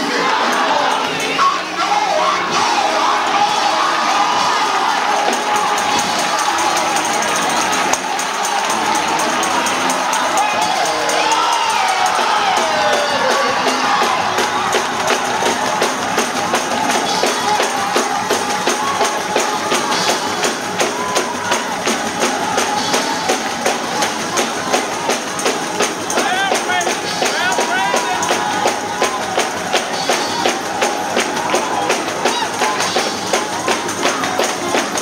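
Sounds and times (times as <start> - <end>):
congregation shouting and cheering: 0.0 - 35.0
tambourine-driven church music: 0.0 - 35.0.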